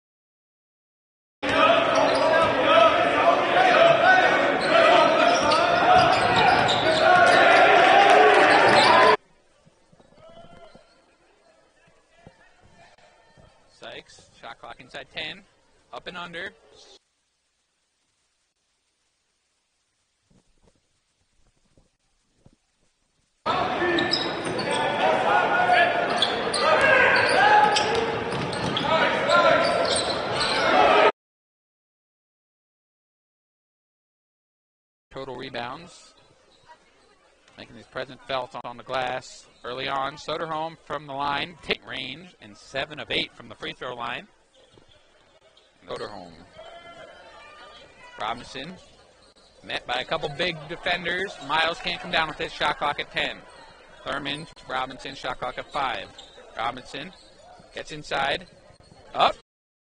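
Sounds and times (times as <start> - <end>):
many voices in a gym: 1.4 - 17.0, 23.5 - 31.1, 35.8 - 59.4
basketball bouncing: 27.7 - 28.9.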